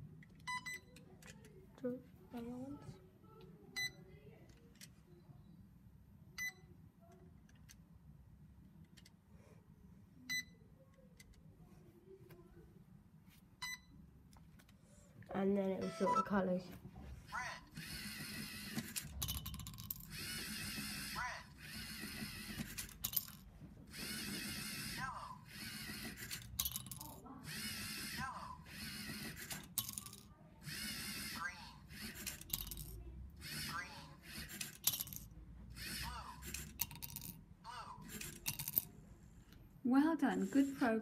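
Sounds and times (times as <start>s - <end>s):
electric motors whirring: 17.3s - 23.2s, 23.8s - 30.0s, 30.6s - 36.9s
plastic bricks dropping into glass: 32.2s - 33.0s, 38.2s - 38.9s.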